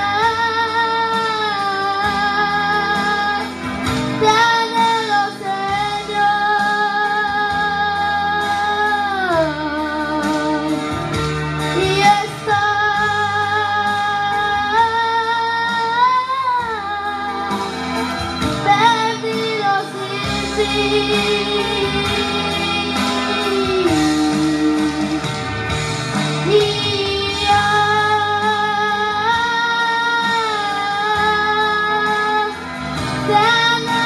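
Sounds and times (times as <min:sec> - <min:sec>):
boy singing into a microphone: 0:00.0 - 0:25.3, 0:26.4 - 0:34.0
instrumental accompaniment: 0:00.0 - 0:34.0.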